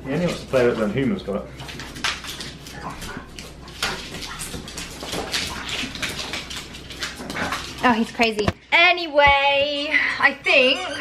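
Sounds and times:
dog claws scrabbling on wooden floor: 0.6s - 8.6s.

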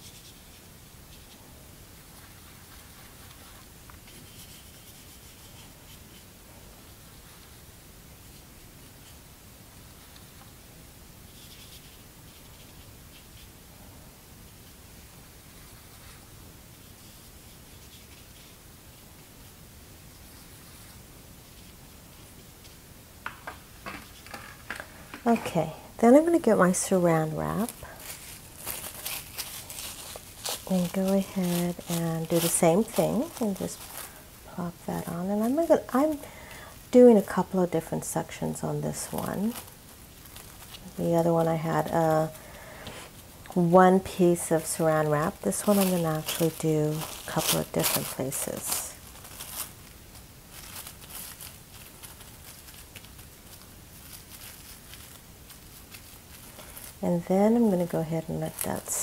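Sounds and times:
plastic cling film crinkling: 22.6s - 59.0s.

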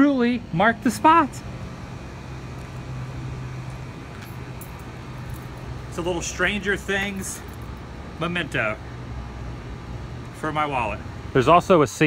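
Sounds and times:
air conditioner unit humming: 0.0s - 12.0s.

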